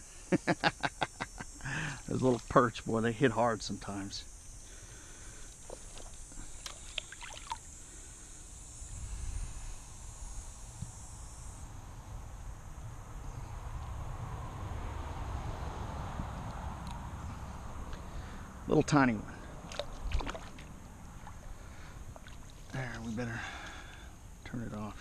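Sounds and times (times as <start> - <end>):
river water sloshing and trickling: 5.6 - 7.7, 19.6 - 22.8
wind rumble on microphone: 8.8 - 17.8.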